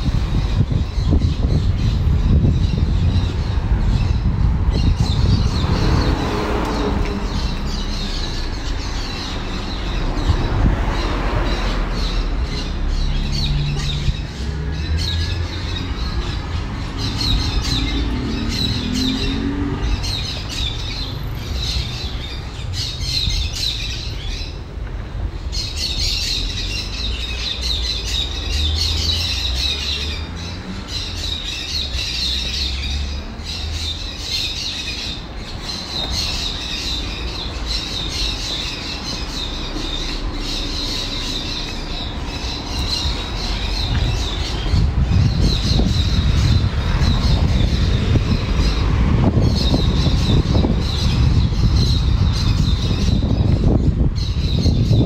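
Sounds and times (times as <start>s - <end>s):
birds calling and squawking: 0.0s - 55.0s.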